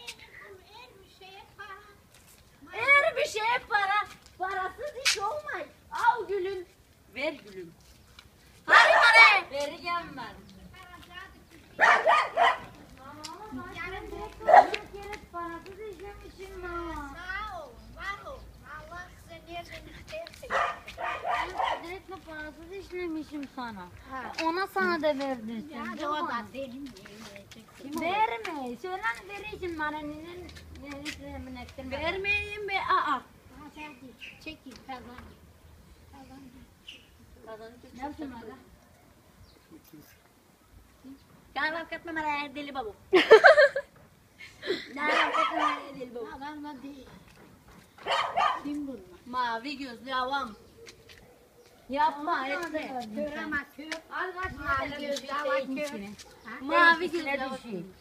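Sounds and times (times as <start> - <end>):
faint background noise: 0.0 - 58.0
dog barking: 8.7 - 9.5, 11.8 - 12.8, 14.4 - 14.8, 20.5 - 21.9, 45.0 - 46.0, 48.0 - 48.8
woman speaking: 8.7 - 11.1, 21.5 - 35.3, 51.9 - 58.0.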